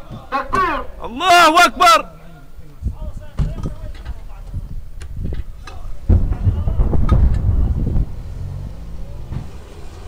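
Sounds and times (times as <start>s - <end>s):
engine rumbling: 2.4s - 10.0s.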